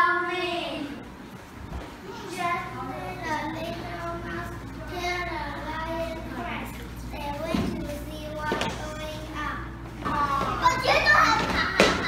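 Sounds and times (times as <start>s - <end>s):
children talking excitedly: 2.0s - 12.0s.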